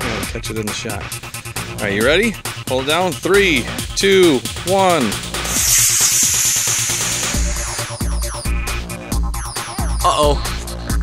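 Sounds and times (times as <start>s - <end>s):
electronic dance music: 1.9s - 8.9s
rocket motor hissing: 5.3s - 8.4s.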